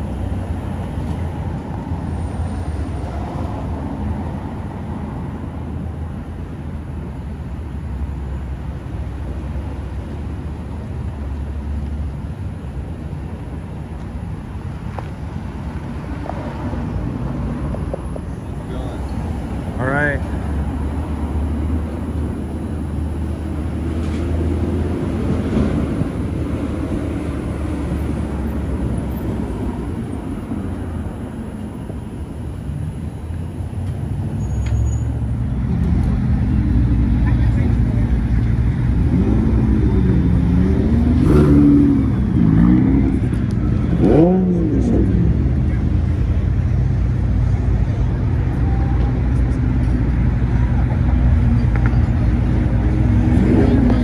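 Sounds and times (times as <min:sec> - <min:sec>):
car engine revving: 0:38.6 - 0:46.0.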